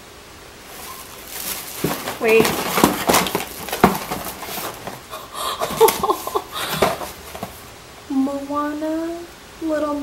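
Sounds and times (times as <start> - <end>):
packaging crinkling and rustling: 0.7 - 7.6.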